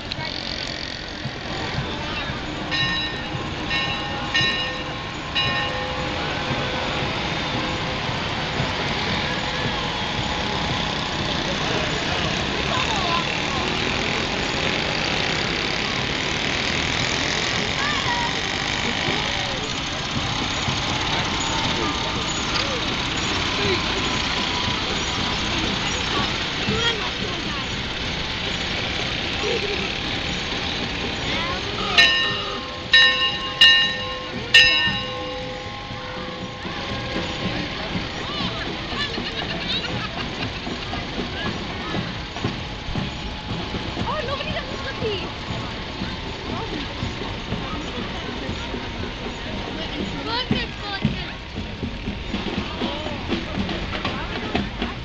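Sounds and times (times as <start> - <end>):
crowd chatter: 0.0 - 55.0
passing vehicles: 0.0 - 55.0.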